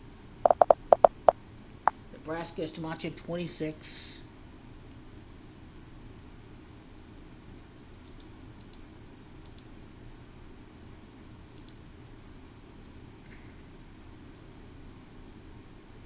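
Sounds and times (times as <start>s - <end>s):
low room hum: 0.0s - 16.0s
computer mouse clicking: 0.5s - 1.3s, 8.0s - 8.8s, 9.4s - 9.7s, 11.6s - 11.8s.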